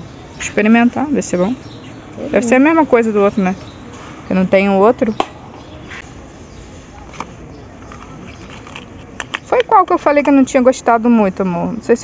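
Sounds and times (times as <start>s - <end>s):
supermarket background noise: 0.0s - 12.0s.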